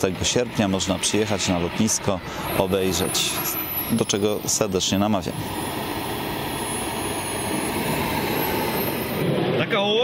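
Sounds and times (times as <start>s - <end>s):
model jet turbine running: 0.0s - 10.0s.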